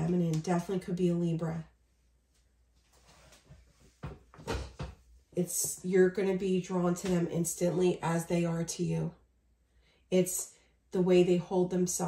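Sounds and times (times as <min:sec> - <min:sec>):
soft knocks with low thuds: 0:04.0 - 0:05.1.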